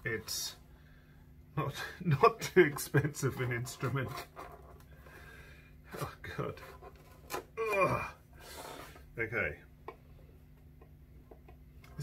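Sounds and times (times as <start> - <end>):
person groaning: 7.6 - 8.2.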